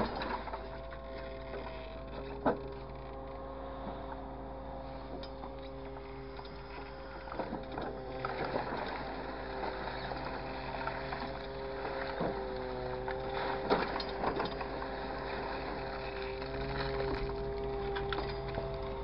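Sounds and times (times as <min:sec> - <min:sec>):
hydraulic crane and engine drone: 0:00.0 - 0:19.0.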